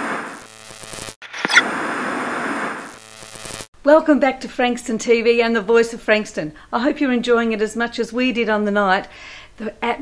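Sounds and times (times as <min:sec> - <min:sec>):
tv static hiss: 0:00.0 - 0:01.6, 0:02.6 - 0:03.7
woman speaking: 0:03.9 - 0:10.0.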